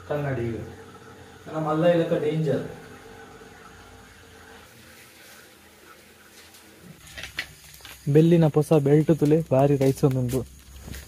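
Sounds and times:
aquarium water: 0:00.0 - 0:07.0.

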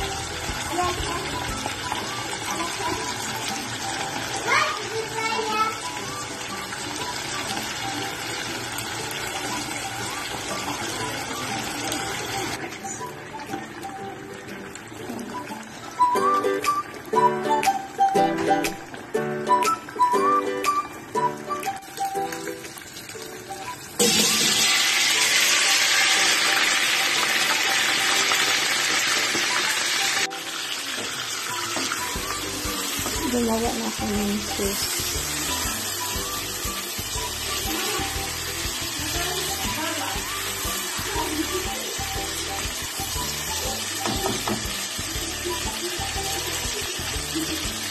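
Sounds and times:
faint background music: 0:00.0 - 0:47.9
hot oil sizzling: 0:00.0 - 0:47.9.

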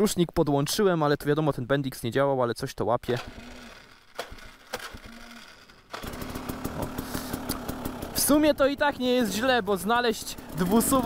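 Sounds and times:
electric starter humming: 0:03.2 - 0:09.0
two-stroke engine idling: 0:03.2 - 0:11.0.

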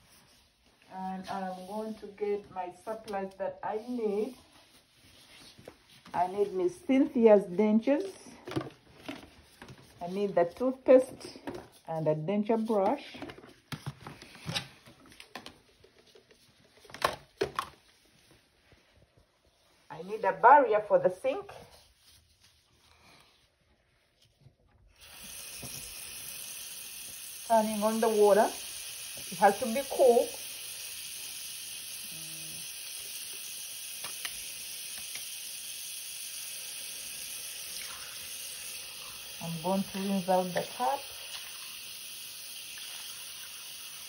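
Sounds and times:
faucet water running onto towel: 0:24.9 - 0:44.0.

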